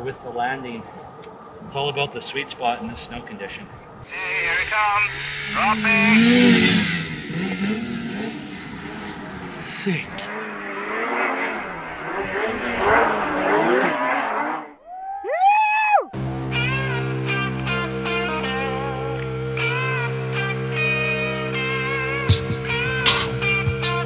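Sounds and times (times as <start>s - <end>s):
snowmobile engine revving: 4.1s - 14.8s, 16.2s - 24.0s
music with held notes and bass: 16.1s - 24.0s.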